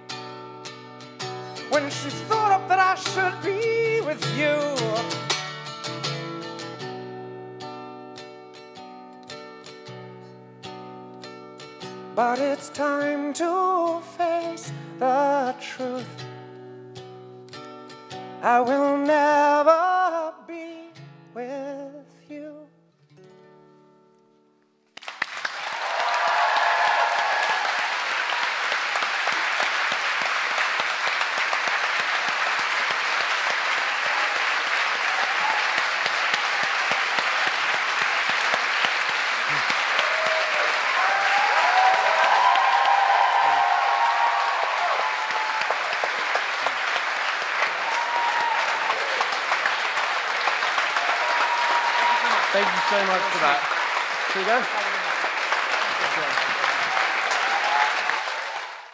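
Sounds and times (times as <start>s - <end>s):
audience applauding: 25.0s - 58.9s.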